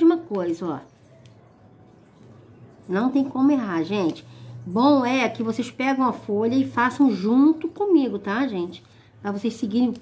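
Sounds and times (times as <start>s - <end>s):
woman speaking: 0.0s - 1.1s, 2.8s - 10.0s.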